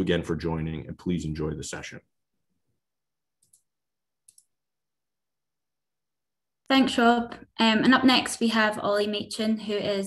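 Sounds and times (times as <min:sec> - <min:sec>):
computer mouse clicks: 0:03.4 - 0:04.6.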